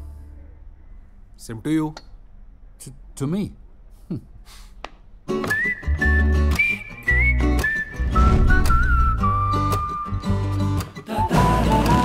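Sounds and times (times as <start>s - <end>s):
whistled melody: 5.4s - 12.0s.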